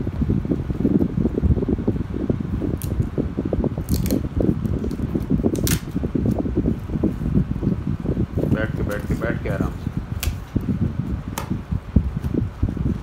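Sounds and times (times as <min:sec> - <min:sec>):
fan rumbling: 0:00.0 - 0:13.0.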